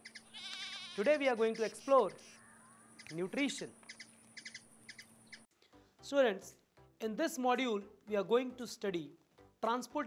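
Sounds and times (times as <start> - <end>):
faint bird chirps: 1.4 - 5.5.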